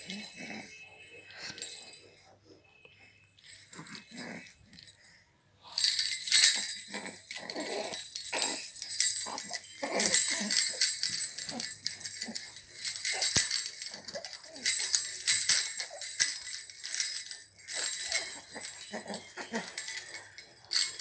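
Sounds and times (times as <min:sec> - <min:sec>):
jingle bell rattle shaken: 0:00.0 - 0:00.8, 0:05.8 - 0:21.0.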